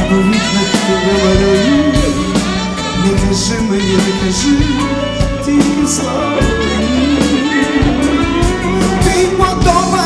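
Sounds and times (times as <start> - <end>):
live pop-rock band playing: 0.0 - 10.0
person singing: 0.0 - 10.0
saxophone melody: 0.0 - 10.0.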